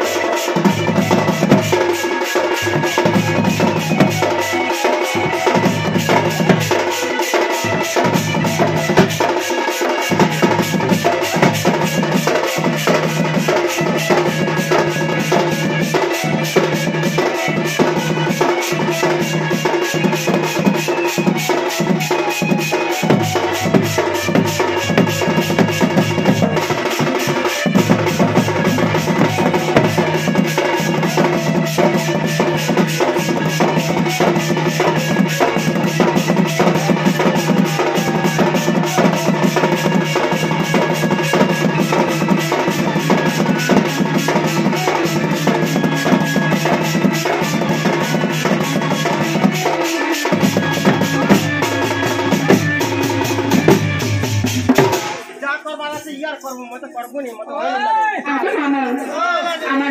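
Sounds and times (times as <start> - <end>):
barrel drum fast rhythm: 0.0 - 56.1.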